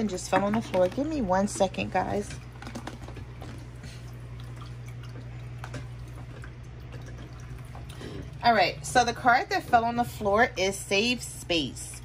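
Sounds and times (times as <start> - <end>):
water fountain trickling: 0.0 - 9.4
low steady hum: 0.0 - 12.0.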